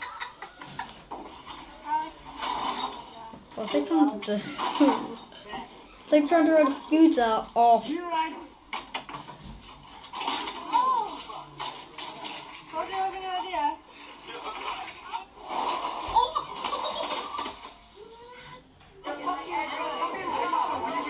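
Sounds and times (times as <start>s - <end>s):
background noise: 0.0s - 21.0s
people talking: 18.0s - 21.0s.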